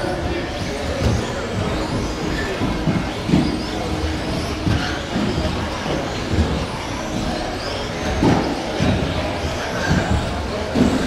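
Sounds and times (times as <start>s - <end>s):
electric rc car motors whining: 0.0s - 11.0s.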